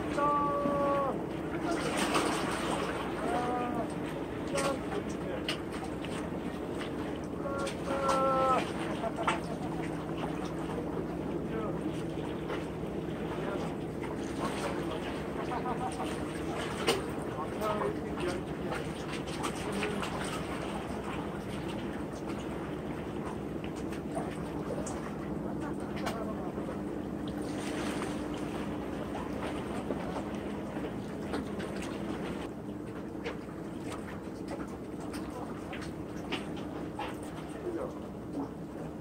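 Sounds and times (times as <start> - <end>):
low engine drone: 0.0 - 39.0
sea water noise: 0.0 - 39.0
wind: 0.0 - 39.0.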